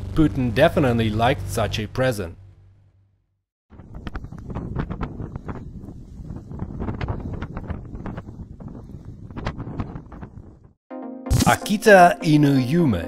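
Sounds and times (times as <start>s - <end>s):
wind buffeting microphone: 3.7s - 10.8s.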